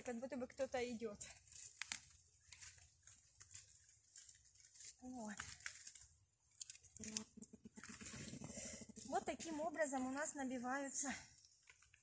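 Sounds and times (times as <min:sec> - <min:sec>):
dry leaves crackling and rustling: 0:01.3 - 0:07.2.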